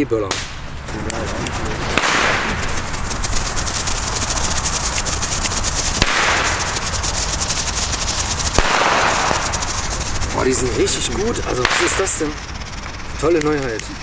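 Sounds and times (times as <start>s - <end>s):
sharp firecracker cracks: 0.3s - 0.7s, 1.8s - 10.1s, 11.6s - 12.2s
firecracker fuses hissing: 0.4s - 14.0s.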